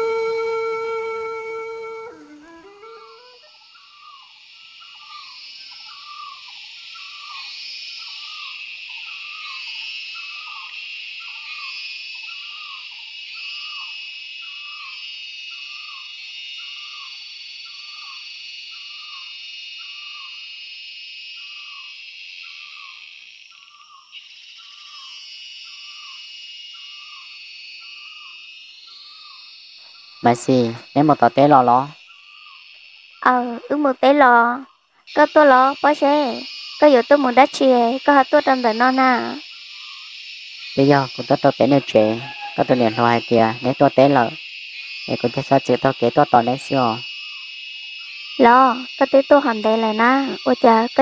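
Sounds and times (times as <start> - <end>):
falling hoot-like call: 0.0 - 6.4, 41.9 - 43.7
insects chorus: 0.0 - 51.0.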